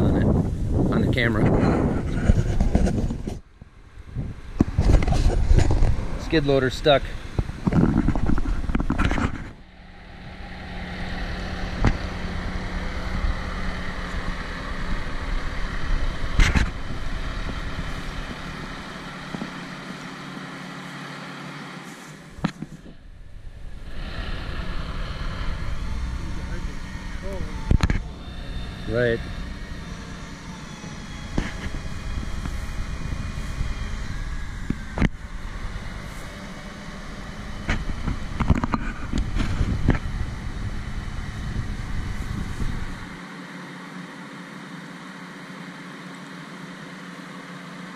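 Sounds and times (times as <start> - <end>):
heavy equipment engine running: 0.0 - 47.9.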